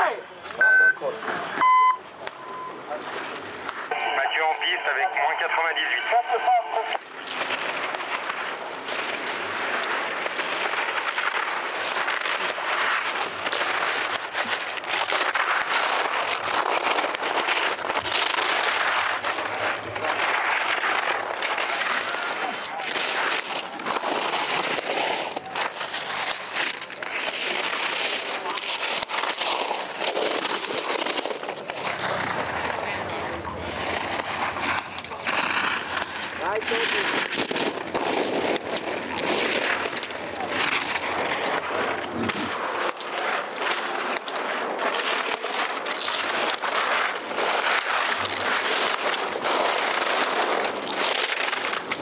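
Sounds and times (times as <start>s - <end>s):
skis scraping on icy snow: 1.0s - 6.5s, 7.2s - 52.0s
skis chattering over ice: 7.1s - 52.0s.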